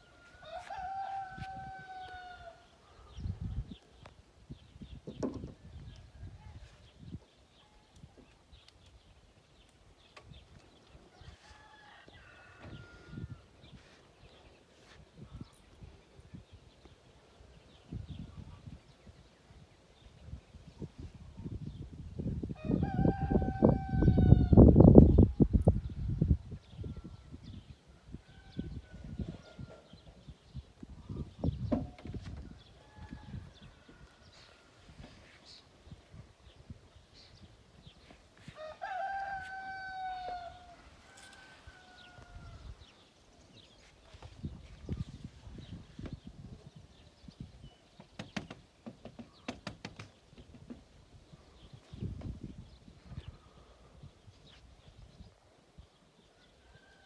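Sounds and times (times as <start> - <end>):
rooster crowing: 0.0 - 2.7, 11.2 - 13.4, 22.6 - 24.6, 38.5 - 42.7.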